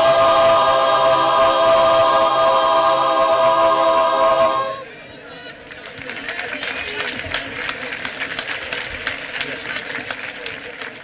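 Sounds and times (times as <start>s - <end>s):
audience applauding: 5.6s - 11.0s.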